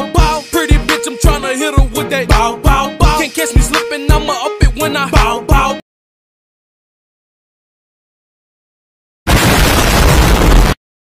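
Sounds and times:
explosion with deep rumble: 9.3 - 10.8.

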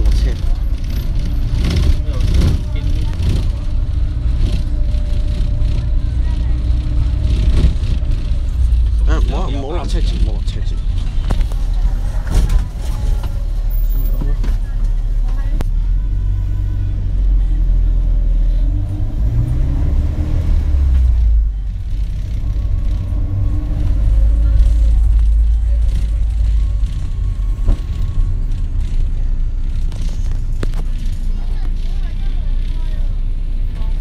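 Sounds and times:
minibus engine and road noise: 0.0 - 34.0.

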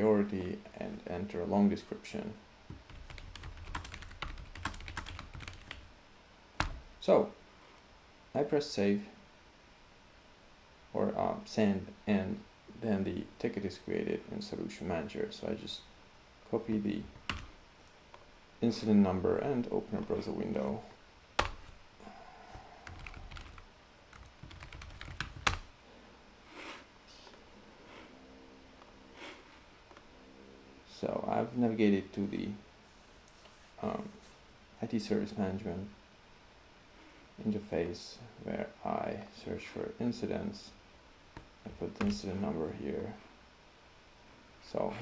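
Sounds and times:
computer keyboard typing: 2.8 - 5.8, 17.2 - 17.5, 22.8 - 25.7.

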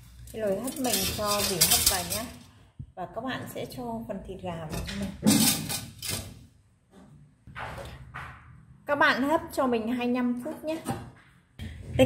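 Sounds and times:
metal bowl scraping metal basket: 0.0 - 2.5, 5.1 - 6.4.

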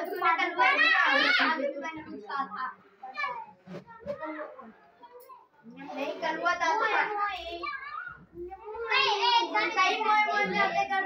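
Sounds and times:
children talking and calling out: 0.0 - 11.0.

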